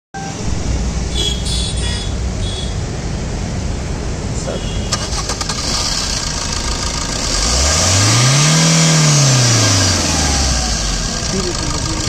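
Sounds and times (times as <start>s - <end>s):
diesel engine idling: 1.1s - 12.0s.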